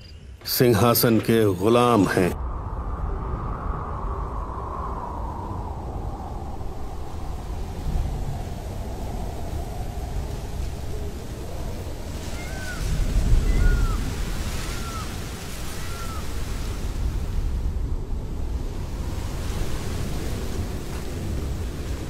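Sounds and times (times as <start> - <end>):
water rushing: 7.0 - 17.4.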